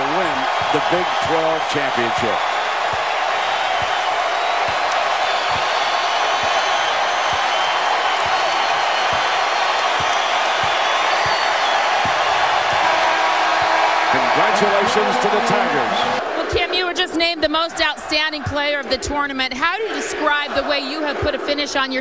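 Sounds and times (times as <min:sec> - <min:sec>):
crowd cheering: 0:00.0 - 0:22.0
basketball dribbled on hardwood: 0:09.0 - 0:12.9
steady horn: 0:12.8 - 0:16.2.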